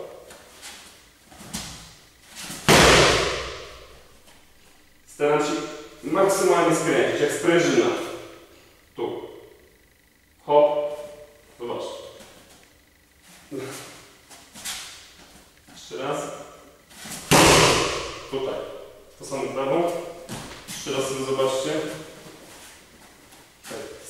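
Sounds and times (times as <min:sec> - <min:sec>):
kick hitting kick shield: 0:02.5 - 0:04.0, 0:17.3 - 0:18.8.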